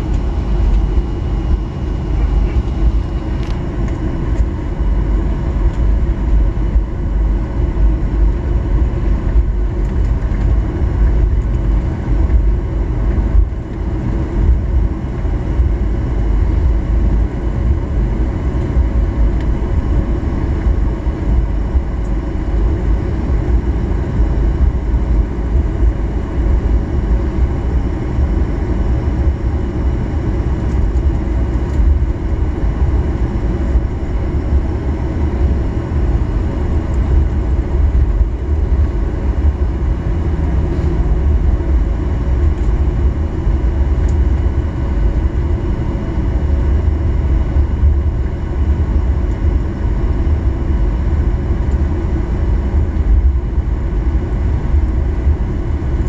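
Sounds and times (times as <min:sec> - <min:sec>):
faint steady whine: 0:00.0 - 0:56.0
jet engines rumbling: 0:00.0 - 0:56.0.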